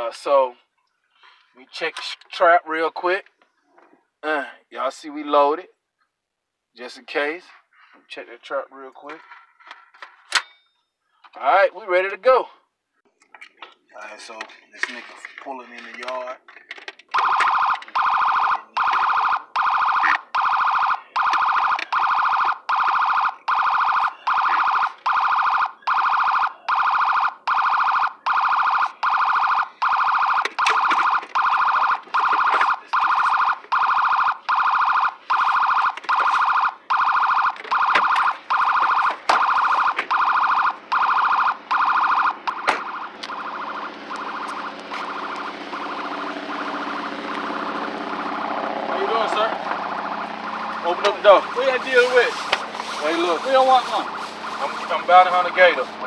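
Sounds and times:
electronic warning beeps: 17.1 - 52.1.

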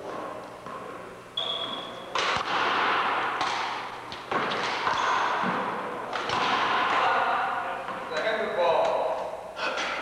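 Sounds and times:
shoe squeak on gym floor: 1.4 - 2.1, 4.9 - 5.3
ball smacks: 2.2 - 7.1.

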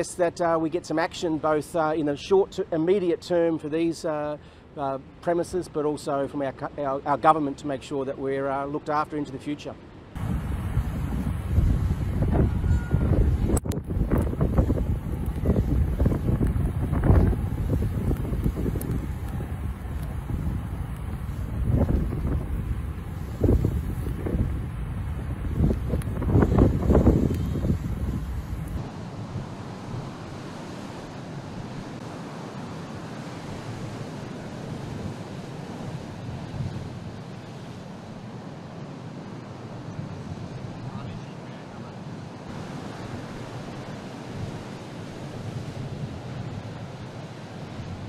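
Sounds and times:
heavy surf rushing: 9.9 - 48.0
gusty wind buffeting microphone: 10.2 - 32.1.

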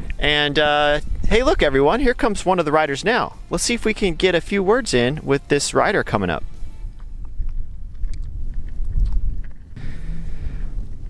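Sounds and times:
wind buffeting microphone: 0.0 - 2.6, 6.4 - 11.0.

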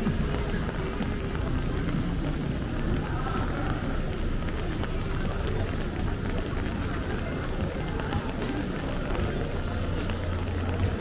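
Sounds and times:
footsteps on wet pavement: 0.0 - 11.0
passers-by talking: 0.0 - 11.0.

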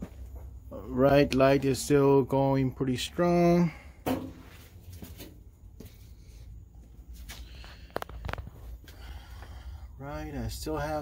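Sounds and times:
footsteps: 4.1 - 9.0.

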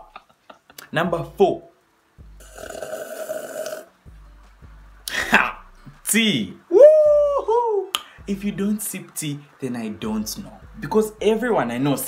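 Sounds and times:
person slurping tea: 2.4 - 3.9.

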